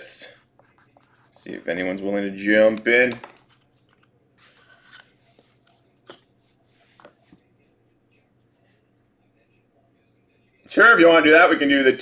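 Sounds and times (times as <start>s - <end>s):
paper card rustling: 2.7s - 7.4s.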